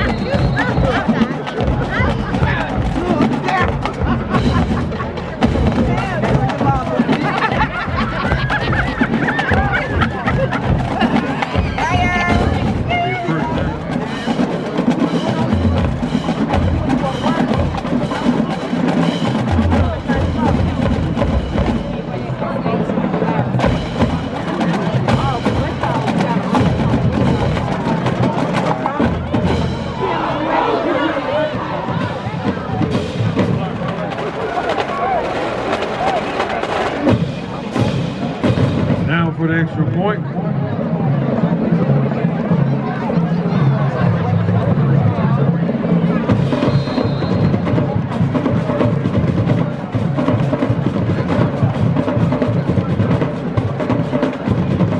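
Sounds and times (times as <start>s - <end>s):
marching drumline playing: 0.0s - 54.9s
people's voices: 0.0s - 54.9s.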